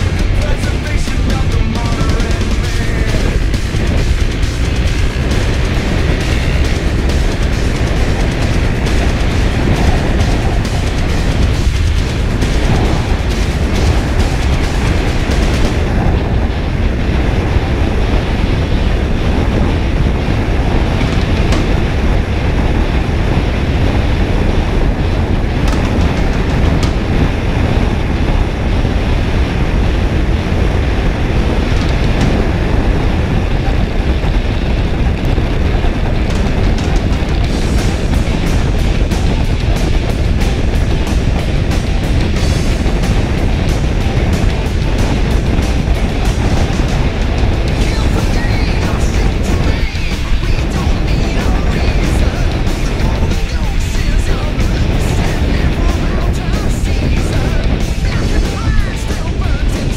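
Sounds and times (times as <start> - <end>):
background music: 0.0 - 59.9
wind and road noise: 0.0 - 59.9.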